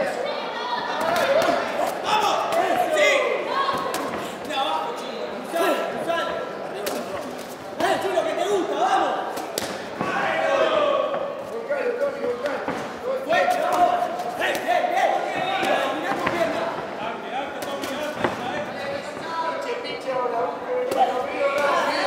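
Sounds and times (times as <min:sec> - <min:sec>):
people shouting: 0:00.7 - 0:04.3, 0:09.9 - 0:11.3, 0:21.0 - 0:22.0.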